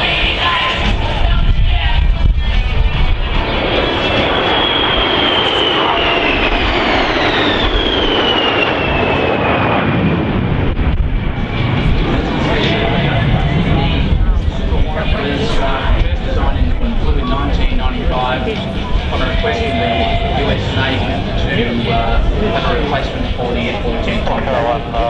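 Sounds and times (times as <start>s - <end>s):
jets passing overhead: 0.0s - 25.0s
high whine sliding down: 0.3s - 24.5s.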